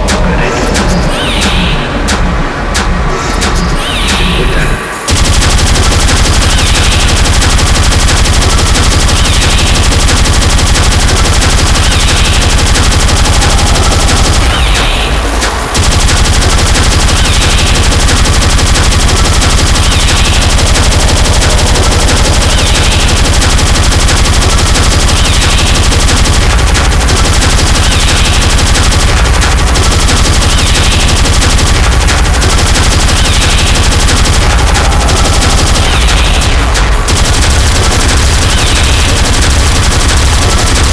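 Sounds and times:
fast distorted kick drums: 0.0 - 40.9
high synth stab: 0.0 - 40.9
speedcore music: 0.0 - 40.9.

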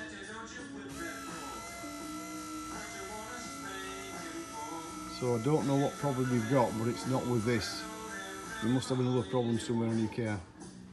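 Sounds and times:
wiper motor whining: 0.9 - 9.0.

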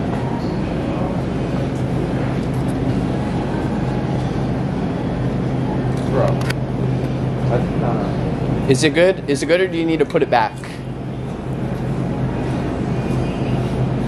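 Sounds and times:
faint voices: 0.0 - 6.4
steady low hum: 0.0 - 14.0.

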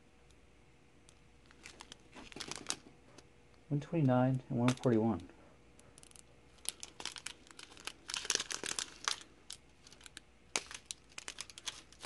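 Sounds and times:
plastic bags crinkling: 1.4 - 2.9, 6.0 - 12.0.

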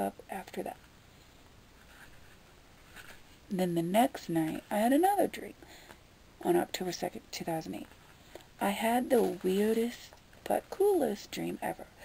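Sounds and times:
faint soft rustle: 0.6 - 6.0, 7.4 - 12.0.

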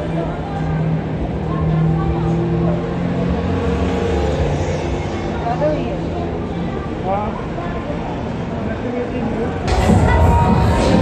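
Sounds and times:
people talking: 0.0 - 3.3, 5.0 - 11.0
street traffic noise: 0.0 - 11.0.

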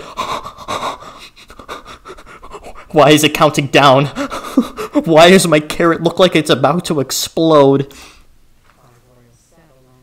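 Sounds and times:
person breathing: 0.0 - 3.0, 4.1 - 5.0, 7.9 - 8.3.

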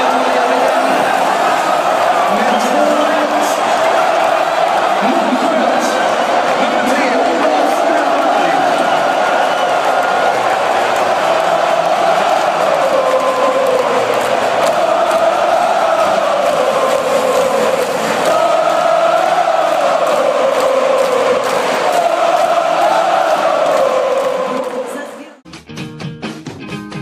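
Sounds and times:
stadium crowd singing a chant: 0.0 - 25.4.

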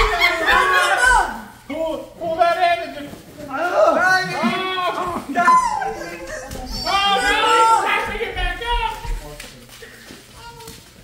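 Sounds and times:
faint murmur of voices: 0.0 - 11.0
soft rustles: 1.7 - 4.2, 8.0 - 11.0.

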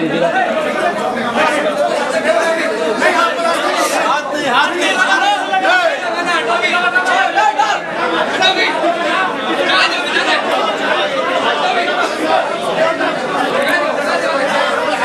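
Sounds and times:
crowd of men talking: 0.0 - 15.0.

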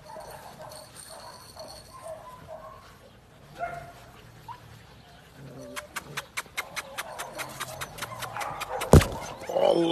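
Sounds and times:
puppies yipping and whimpering: 4.4 - 9.9.

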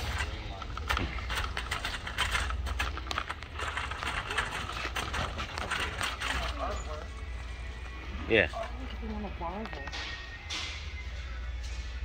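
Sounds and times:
shopping cart rolling and rattling: 0.0 - 7.3.

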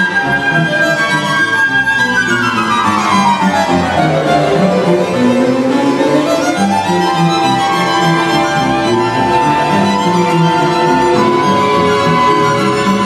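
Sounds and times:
string orchestra playing: 0.0 - 13.0.

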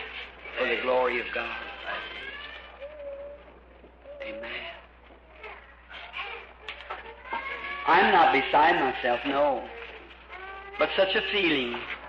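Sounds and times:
young child crying: 5.4 - 8.3.

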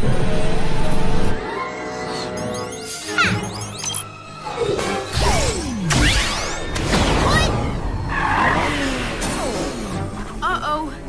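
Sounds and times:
cartoon tyres skidding: 8.0 - 9.2.

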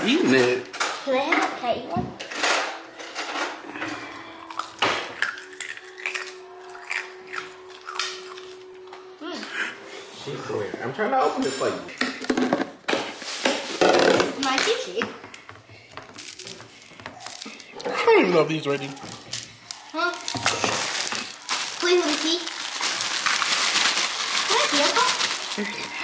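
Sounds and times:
stiff plastic crinkling: 16.2 - 26.0.

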